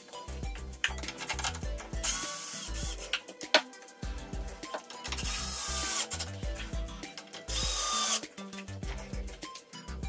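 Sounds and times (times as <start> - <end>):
background music with bass beat: 0.0 - 10.0
power drill running: 5.3 - 6.2, 7.5 - 8.2.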